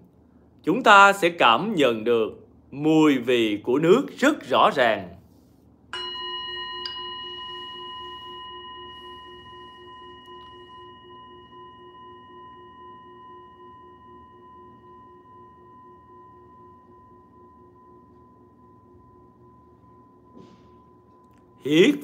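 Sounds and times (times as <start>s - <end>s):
metal singing bowl ringing: 5.9s - 22.0s.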